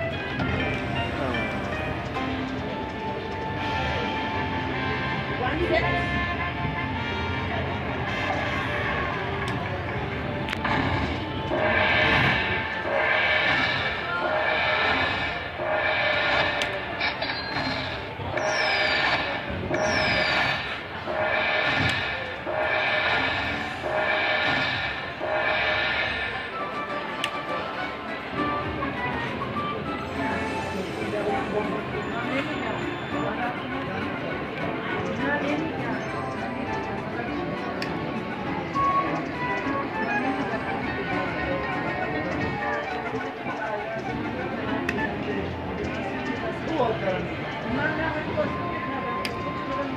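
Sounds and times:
casino background noise: 0.0s - 49.9s
slot machine chiming tones: 11.2s - 21.6s, 35.6s - 37.5s.

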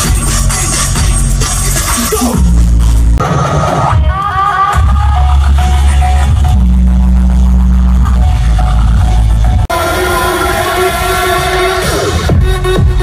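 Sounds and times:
electronic dance music: 0.0s - 13.0s.

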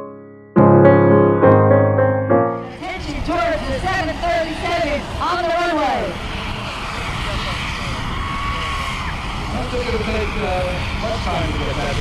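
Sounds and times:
outdoor noise on airport apron: 2.8s - 12.0s.

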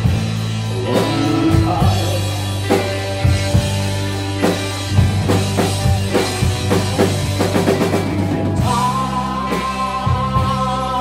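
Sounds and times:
drum kit kick and snare: 0.0s - 10.6s
electric bass: 0.0s - 11.0s
electric guitar: 0.0s - 11.0s.

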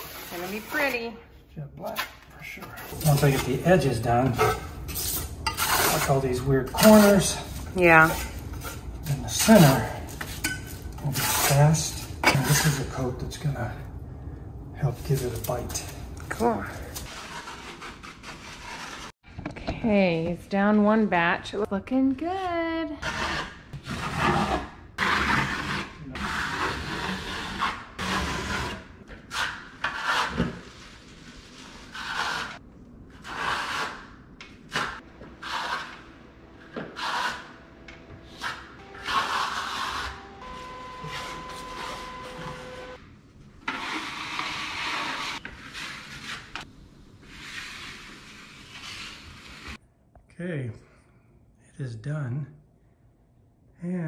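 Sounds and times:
trowel scraping cement on wall: 0.0s - 1.1s, 2.7s - 12.9s, 17.0s - 19.2s, 23.0s - 36.1s, 36.7s - 37.6s, 43.6s - 49.8s.

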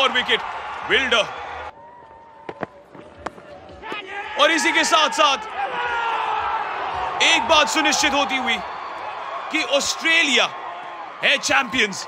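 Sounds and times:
commentator speaking: 7.2s - 8.6s.

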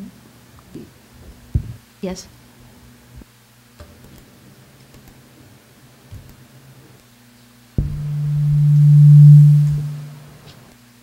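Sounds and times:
low pure hum: 7.8s - 10.4s.

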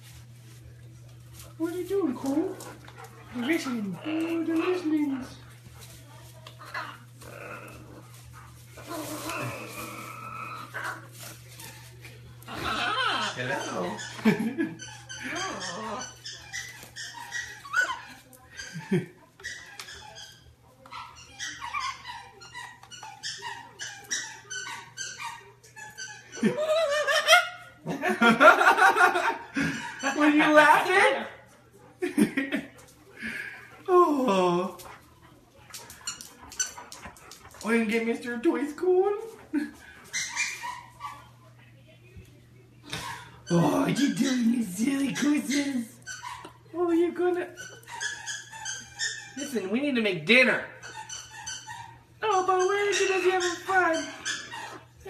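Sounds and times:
dog whimpering: 6.5s - 11.8s, 12.4s - 27.8s, 33.1s - 41.4s, 43.0s - 49.8s, 50.4s - 55.0s.

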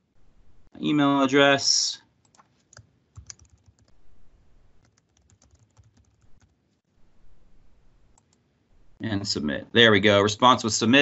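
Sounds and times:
typing on computer keyboard: 2.3s - 4.0s, 4.8s - 6.6s.

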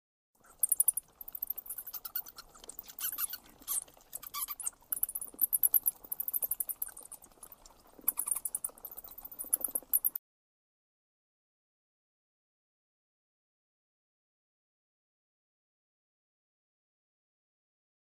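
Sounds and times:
bats squeaking and chittering: 0.5s - 10.2s.

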